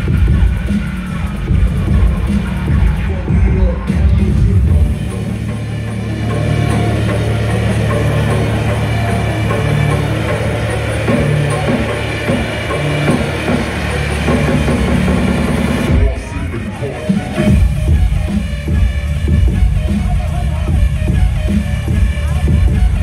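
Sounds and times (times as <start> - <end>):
loud electronic dance music: 0.0 - 23.0.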